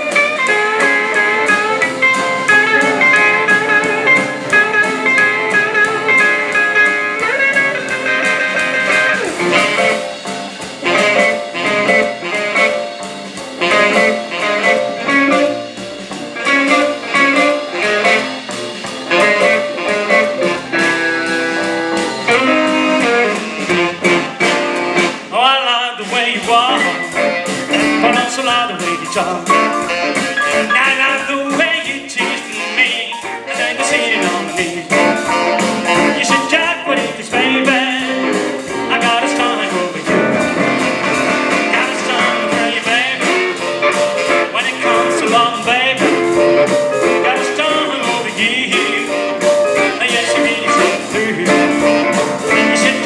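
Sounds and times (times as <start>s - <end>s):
live blues band playing: 0.0s - 53.0s
person singing: 25.3s - 29.8s, 30.4s - 40.5s, 41.6s - 43.6s, 44.5s - 53.0s.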